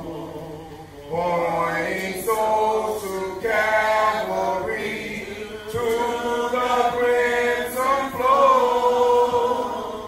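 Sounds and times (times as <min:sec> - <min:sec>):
slow hymn singing: 0:00.0 - 0:10.0.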